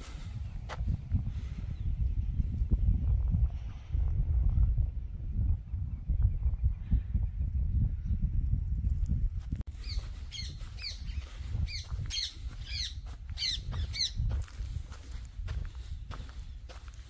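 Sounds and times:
steady low rumble: 0.0 - 17.0
bird calling: 9.7 - 14.3.

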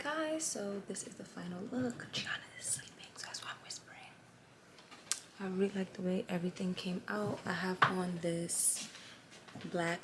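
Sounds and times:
woman whispering: 1.8 - 4.3.

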